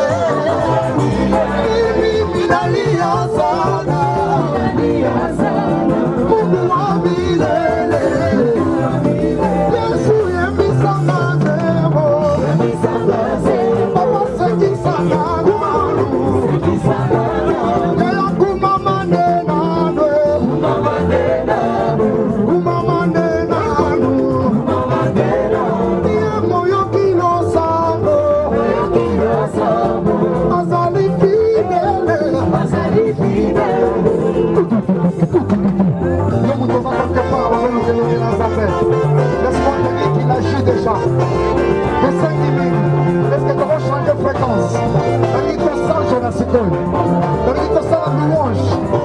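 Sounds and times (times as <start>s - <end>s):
group of singers: 0.0s - 49.0s
instrumental backing with bass line: 0.0s - 49.0s
man singing lead: 0.0s - 49.0s.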